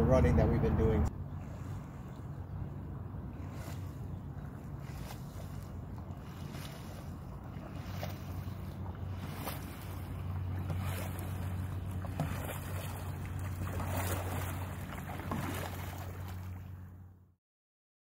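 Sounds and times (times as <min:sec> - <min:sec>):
low hum: 0:00.0 - 0:17.4
paddle strokes in water: 0:01.2 - 0:17.0.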